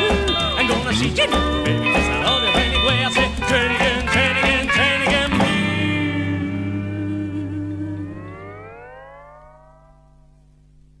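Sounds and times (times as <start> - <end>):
guitar note sliding up: 5.3 - 10.5
faint low hum: 5.7 - 11.0.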